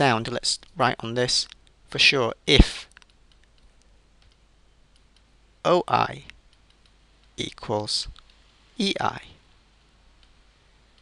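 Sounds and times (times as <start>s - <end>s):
man's voice: 8.8s - 9.4s.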